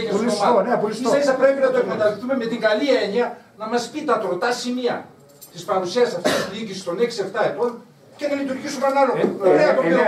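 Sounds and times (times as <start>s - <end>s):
men arguing: 0.0s - 5.0s, 5.6s - 10.0s.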